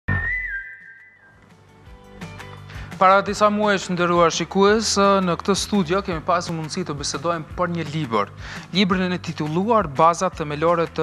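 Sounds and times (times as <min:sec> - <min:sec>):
high whistle-like tone: 0:00.1 - 0:01.4.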